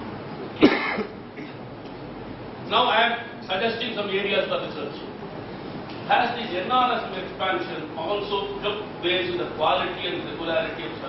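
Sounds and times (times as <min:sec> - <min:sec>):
person coughing: 0:00.6 - 0:01.6.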